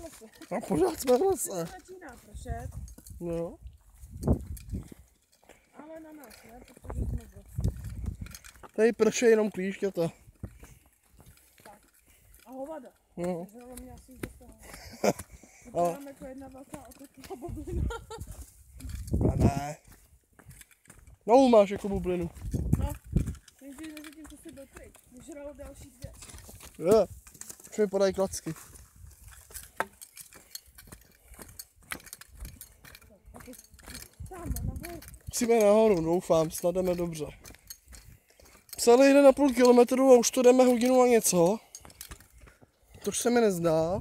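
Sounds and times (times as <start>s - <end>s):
person speaking: 0.0s - 3.6s
footsteps on dirt path: 0.0s - 44.0s.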